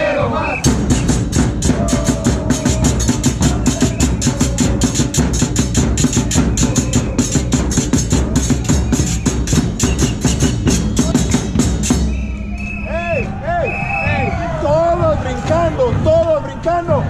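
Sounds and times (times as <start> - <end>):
bass and snare drums beating: 0.6 - 17.0.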